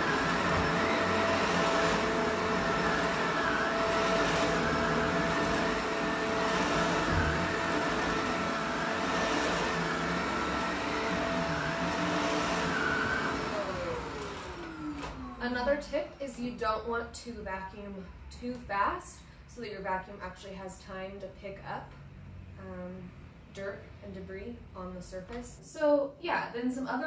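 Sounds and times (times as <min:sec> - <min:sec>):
vacuum cleaner running on a rug: 0:00.0 - 0:15.3
vacuum motor winding down: 0:00.0 - 0:15.4.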